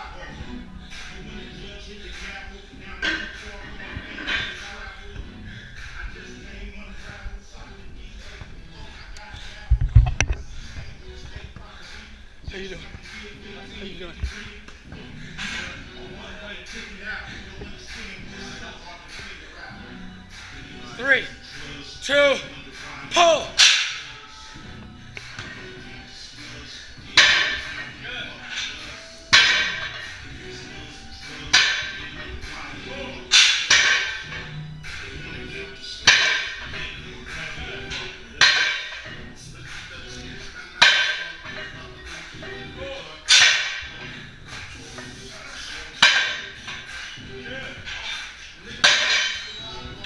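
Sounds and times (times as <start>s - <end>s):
music playing: 0.0s - 50.0s.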